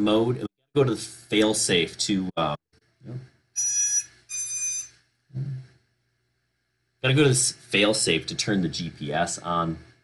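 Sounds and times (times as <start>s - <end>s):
electronic beeps: 3.6s - 5.0s.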